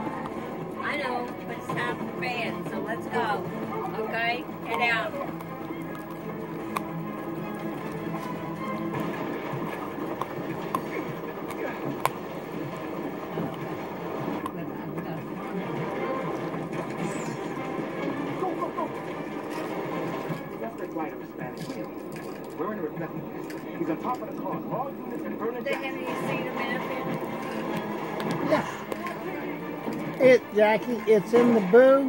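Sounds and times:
television voices and music: 0:00.0 - 0:32.0
dog gnawing a chew: 0:03.4 - 0:30.8
teeth clicking on chew: 0:04.6 - 0:14.6.

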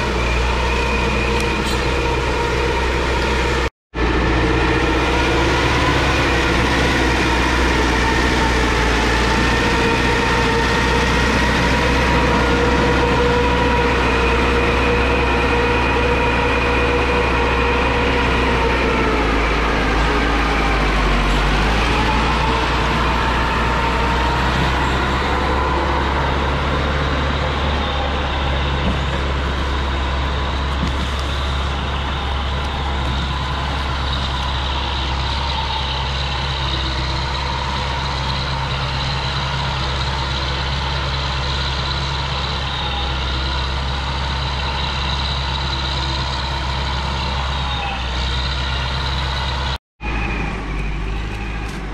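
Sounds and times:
diesel engine running under load: 0:00.0 - 0:51.9
logs being dragged: 0:04.4 - 0:42.1.

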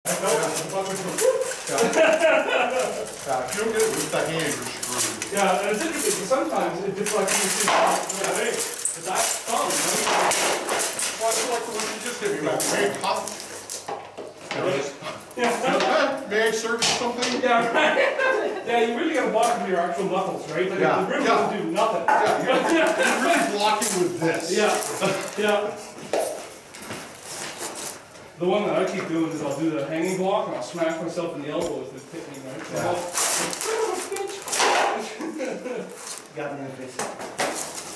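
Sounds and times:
armour and weapons clinking: 0:00.1 - 0:13.9
men talking: 0:00.1 - 0:26.5, 0:28.3 - 0:37.2.

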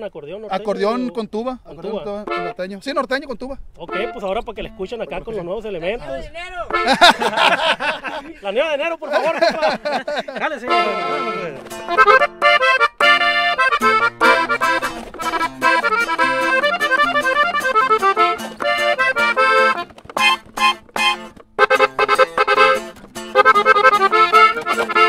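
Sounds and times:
guitar accompaniment: 0:01.8 - 0:02.6, 0:03.9 - 0:05.3, 0:06.7 - 0:07.7, 0:10.5 - 0:25.0
button accordion melody: 0:01.9 - 0:02.6, 0:03.8 - 0:04.4, 0:06.7 - 0:07.5, 0:10.4 - 0:25.0.

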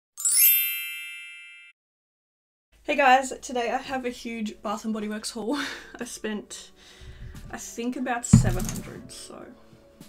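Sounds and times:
bright chime: 0:00.2 - 0:01.8.

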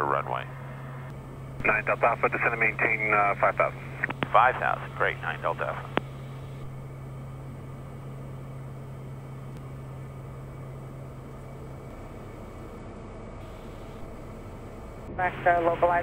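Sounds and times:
aircraft cabin engine drone: 0:00.0 - 0:16.0
low steady hum: 0:00.0 - 0:16.0.

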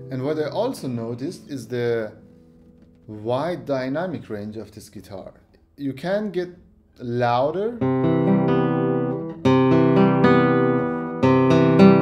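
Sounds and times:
classical guitar chords ringing: 0:00.0 - 0:04.4, 0:07.7 - 0:12.0.

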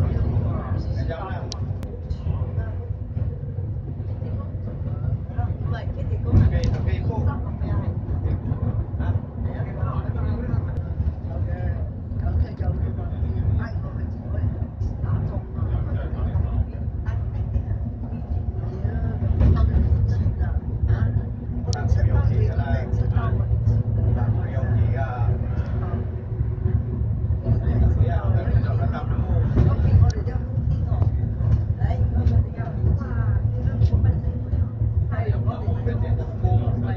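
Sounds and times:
bus engine and road rumble: 0:00.0 - 0:36.9
passenger chatter: 0:00.0 - 0:36.9.

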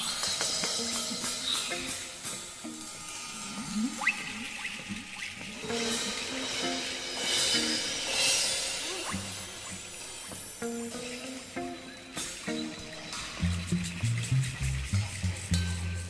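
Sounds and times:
background music melody: 0:00.0 - 0:16.0.

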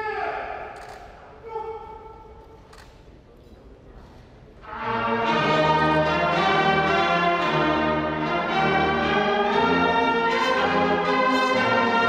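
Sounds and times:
slow ceremonial music: 0:04.6 - 0:12.0.

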